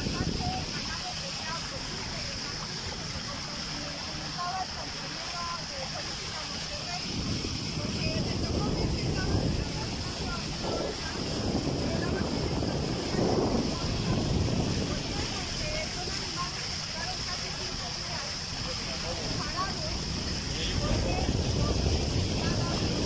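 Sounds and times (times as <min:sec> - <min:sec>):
steady hiss: 0:00.0 - 0:23.0
wind rumbling on microphone: 0:00.0 - 0:23.0.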